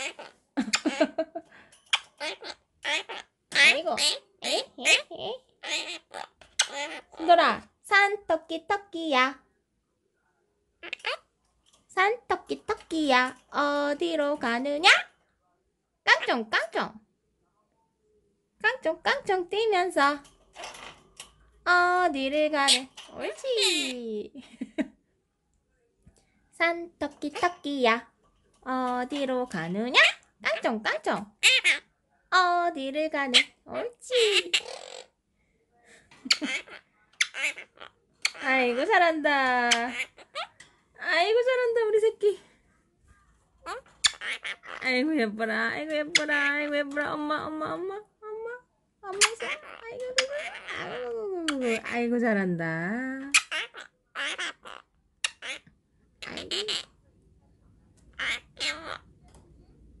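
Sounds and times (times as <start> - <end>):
parrot mimicking singing: 0.0 - 0.9, 1.9 - 7.6, 10.8 - 11.3, 14.7 - 15.1, 22.6 - 24.1, 29.8 - 31.9, 33.2 - 35.1, 36.3 - 39.0, 39.7 - 40.6, 43.6 - 45.0, 46.0 - 46.8, 48.1 - 52.0, 53.2 - 56.9, 58.1 - 59.1.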